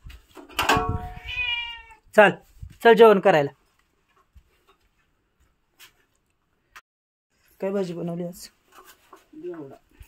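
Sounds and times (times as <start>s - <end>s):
cat meowing: 1.0s - 2.1s.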